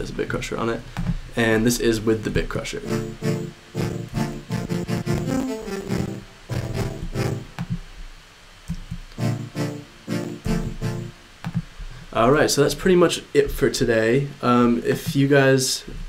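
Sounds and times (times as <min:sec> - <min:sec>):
pulsing lo-fi synthesizer chords: 0:02.8 - 0:07.8, 0:09.1 - 0:11.3.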